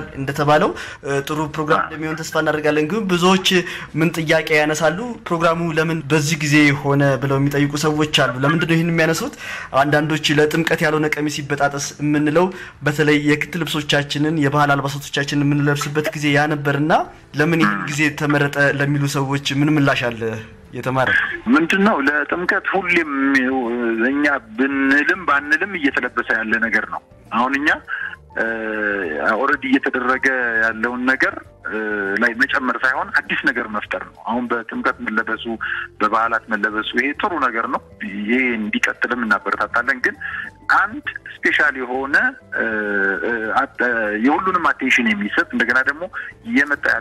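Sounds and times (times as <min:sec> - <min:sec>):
person talking: 0:00.0 - 0:47.0.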